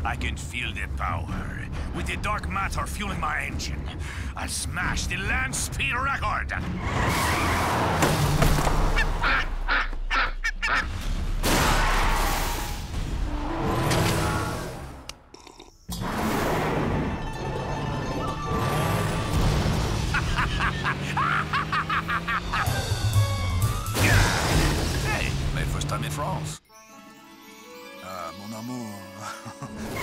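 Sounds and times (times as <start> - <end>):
racing car engine: 18.4 - 23.2.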